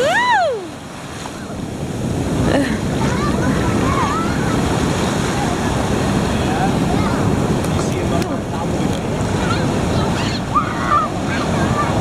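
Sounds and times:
ocean surf washing through shallows: 0.0s - 12.0s
waves breaking: 0.0s - 12.0s.

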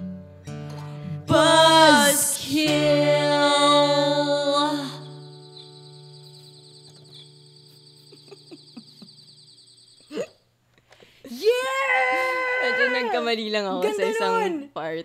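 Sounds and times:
acoustic guitar: 0.0s - 10.4s
person singing: 1.3s - 5.2s.

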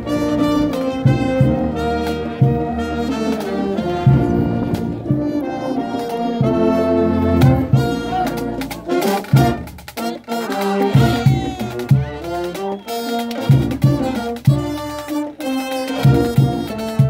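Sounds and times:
brass band playing: 0.0s - 17.0s
tuba bass line: 0.0s - 17.0s.

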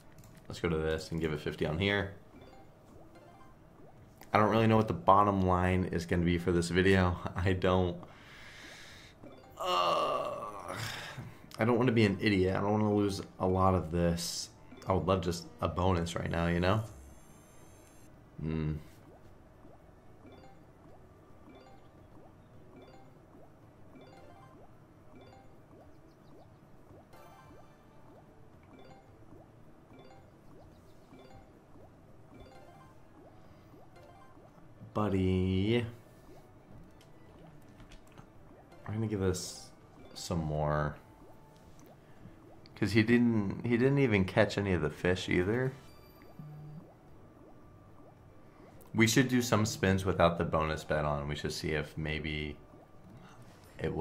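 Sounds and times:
faint slot game music: 0.0s - 54.0s
slot game rising chirps: 23.9s - 29.2s.

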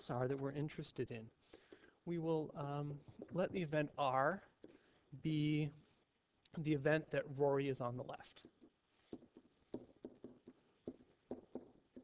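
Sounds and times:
pen tapping on writing surface: 8.4s - 12.0s.

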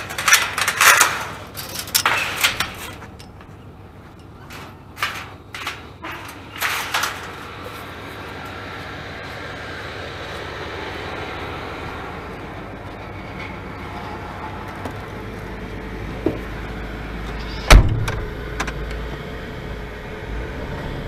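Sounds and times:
van engine idling: 0.0s - 21.0s.

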